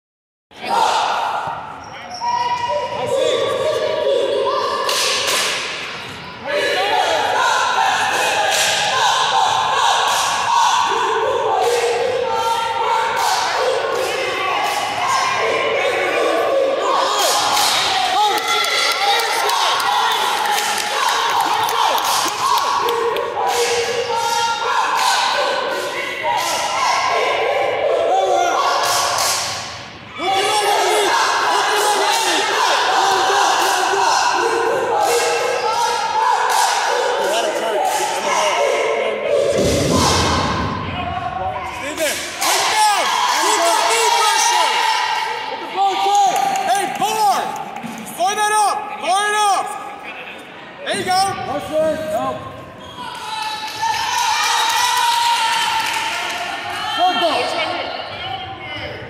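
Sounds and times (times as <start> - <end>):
people shouting: 0.6 - 47.6.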